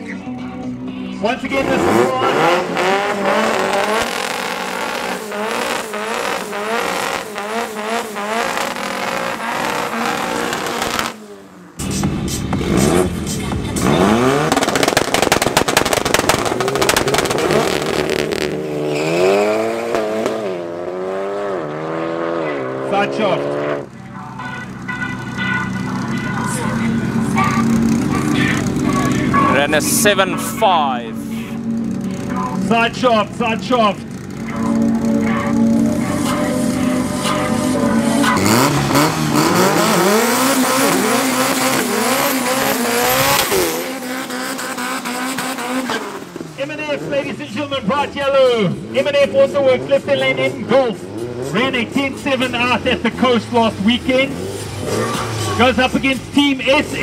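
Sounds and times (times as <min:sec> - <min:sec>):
drag car engines revving: 0:00.0 - 0:57.0
tyre squeal: 0:18.8 - 0:19.8, 0:54.4 - 0:55.8.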